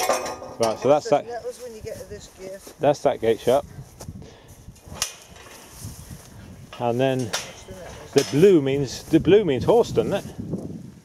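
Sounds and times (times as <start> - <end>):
faint rustling and handling noise: 0.2 - 10.4.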